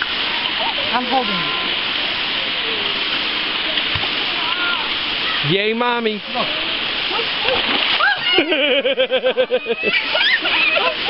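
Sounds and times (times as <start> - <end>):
stream water running over rocks: 0.0 - 11.0
splashing in water: 6.2 - 8.7.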